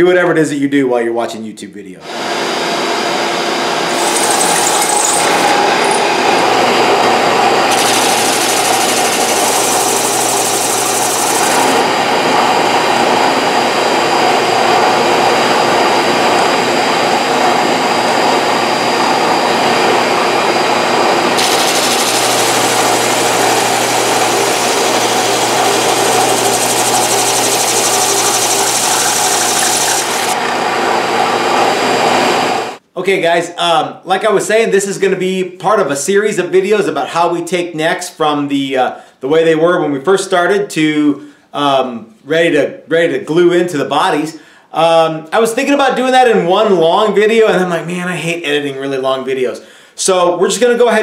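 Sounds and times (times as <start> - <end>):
drum sander motor running: 2.0 - 32.8.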